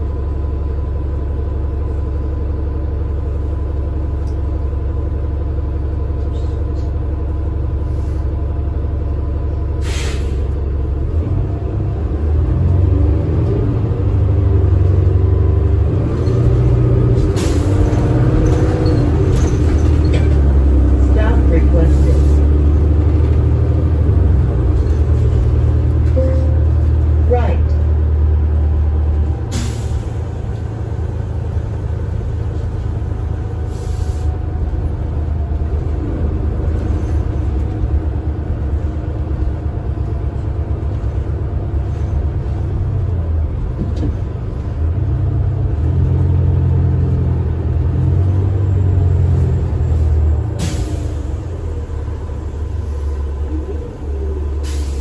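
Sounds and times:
bus engine running: 0:00.0 - 0:55.0
air hissing: 0:09.8 - 0:10.5.

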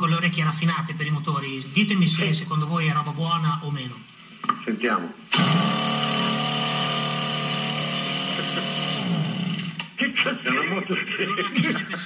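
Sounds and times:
air compressor humming: 0:05.3 - 0:10.7.

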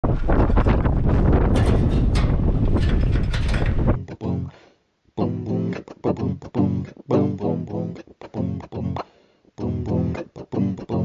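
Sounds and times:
deep rumble: 0:00.0 - 0:04.0
mechanical rattling: 0:00.0 - 0:04.0
wind buffeting microphone: 0:00.0 - 0:04.0.

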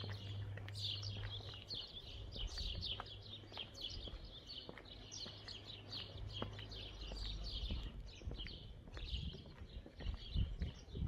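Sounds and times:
footsteps on pavement: 0:00.0 - 0:11.0
small birds chirping: 0:00.0 - 0:11.0.

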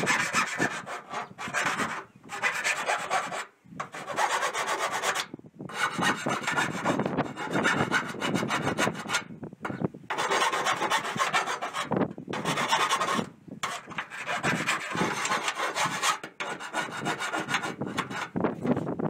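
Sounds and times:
file rasping on sheet metal: 0:00.0 - 0:18.8.

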